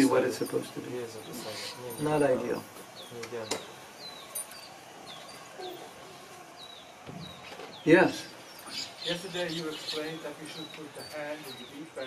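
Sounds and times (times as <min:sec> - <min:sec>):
small bird chirping: 0:02.9 - 0:11.9.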